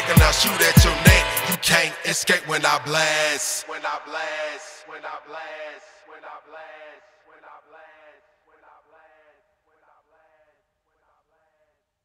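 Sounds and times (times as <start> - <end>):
echo of man's rapped vocal: 0.0 - 5.9.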